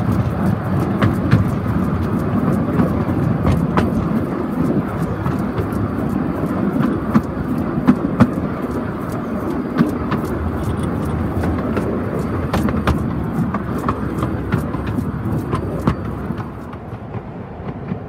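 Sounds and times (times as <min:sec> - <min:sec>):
sharp clicks and knocks: 0:00.0 - 0:18.0
steel wheels rolling on rails: 0:00.0 - 0:18.0.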